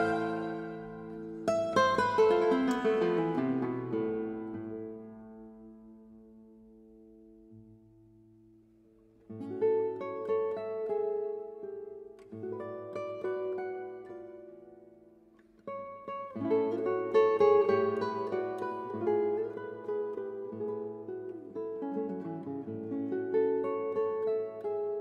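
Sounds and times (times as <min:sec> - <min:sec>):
fingerpicked classical guitar: 0:00.0 - 0:25.0.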